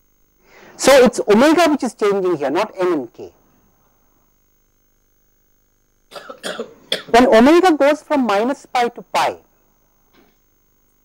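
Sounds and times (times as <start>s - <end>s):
man speaking: 0.8s - 3.4s, 7.1s - 9.5s
man coughing: 6.1s - 7.2s.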